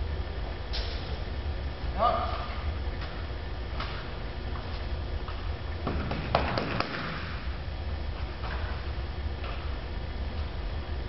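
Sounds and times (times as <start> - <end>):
low steady rumble: 0.0 - 11.0
echoing knocks and clicks: 5.8 - 7.4.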